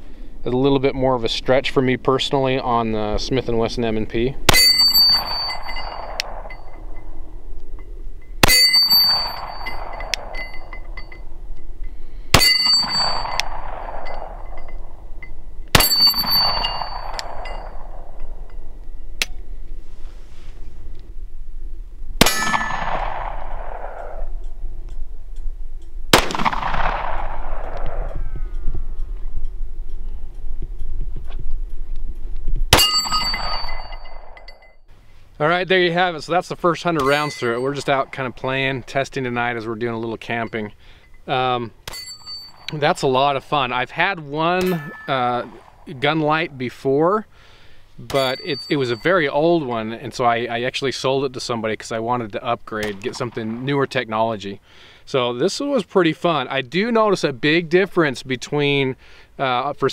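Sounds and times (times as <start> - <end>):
steel target plate ringing: 4.5 - 19.2, 22.2 - 23.8, 32.7 - 34.9, 36.8 - 46.8, 48.0 - 50.2
pistol shots: 22.2 - 24.4, 26.1 - 28.2.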